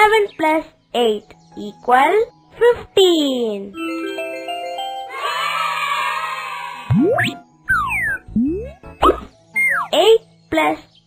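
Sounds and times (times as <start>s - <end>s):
children's music: 0.0s - 11.0s.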